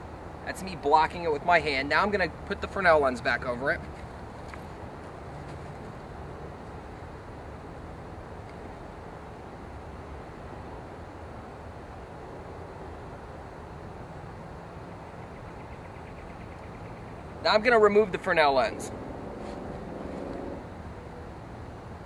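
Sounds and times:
low hum: 0:05.2 - 0:21.5.

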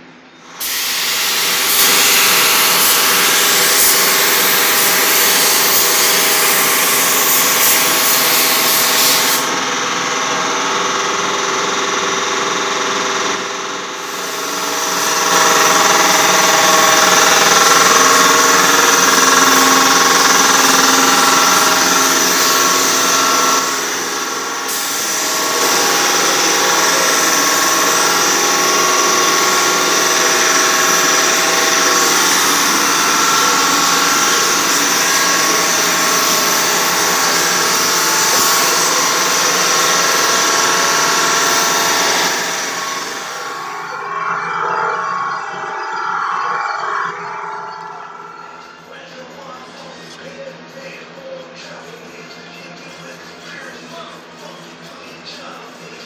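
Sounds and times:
steady machine hum: 0:00.0 - 0:50.0
paint spray gun hissing: 0:00.6 - 0:09.5.

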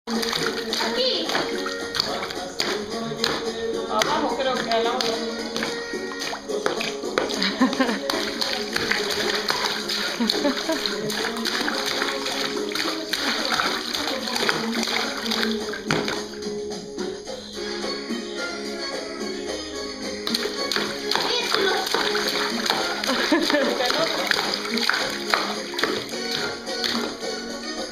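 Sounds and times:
sharp slaps on water: 0:00.1 - 0:16.3, 0:20.2 - 0:27.2
water splashing in a bathtub: 0:00.1 - 0:16.5, 0:20.2 - 0:27.5
music: 0:00.1 - 0:27.9
voices: 0:00.2 - 0:03.2.

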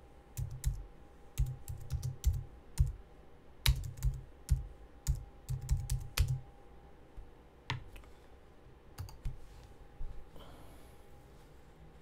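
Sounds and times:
typing on computer keyboard: 0:00.4 - 0:00.8, 0:01.4 - 0:03.0, 0:03.7 - 0:06.4, 0:09.0 - 0:09.4.

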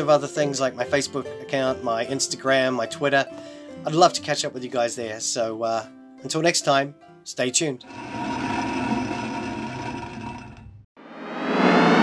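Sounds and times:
ring rolling with scraping rumble: 0:07.9 - 0:10.9.

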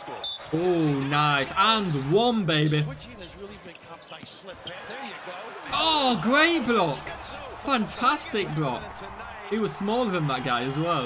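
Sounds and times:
commentator's voice: 0:00.6 - 0:03.6, 0:05.7 - 0:11.0.

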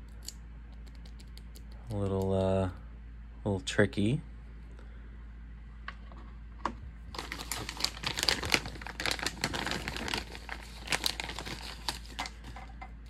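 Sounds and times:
plastic bag and tissue paper crinkling: 0:07.0 - 0:12.6.

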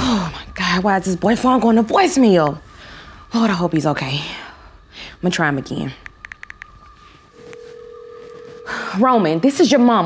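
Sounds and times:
steady low phone tone: 0:06.0 - 0:10.0.

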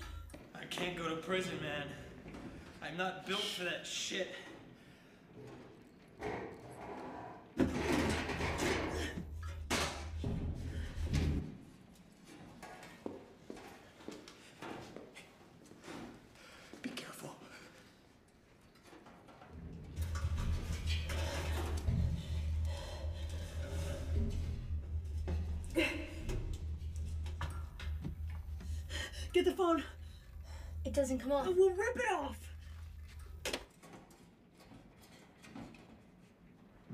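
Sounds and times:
low drone: 0:19.5 - 0:33.4.

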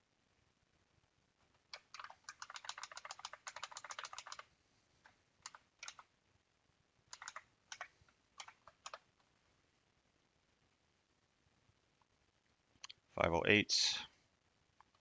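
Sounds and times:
typing on computer keyboard: 0:01.7 - 0:04.5, 0:05.4 - 0:06.1, 0:07.1 - 0:09.0.

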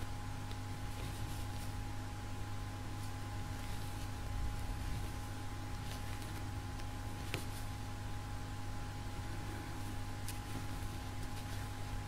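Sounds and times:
electrical hum and hiss: 0:00.0 - 0:12.0.

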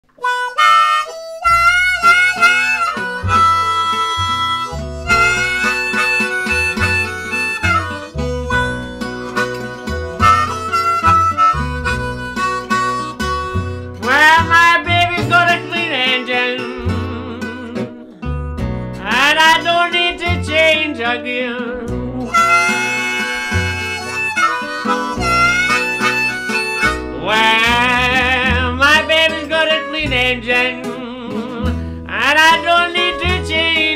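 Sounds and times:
blues harmonica bending notes: 0:00.0 - 0:33.9
guitars: 0:00.0 - 0:33.9
upright bass: 0:00.2 - 0:33.9.

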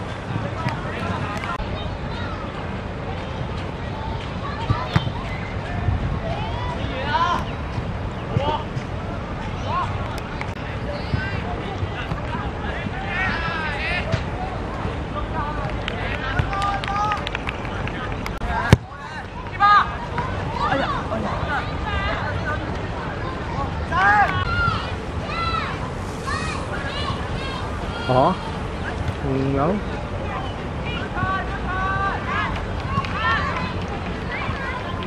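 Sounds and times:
outdoor wind noise: 0:00.0 - 0:35.0
players calling and shouting: 0:00.0 - 0:35.0.

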